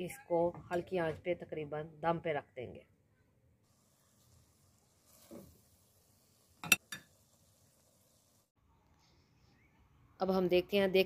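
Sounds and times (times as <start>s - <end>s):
faint hiss: 3.6s - 9.7s.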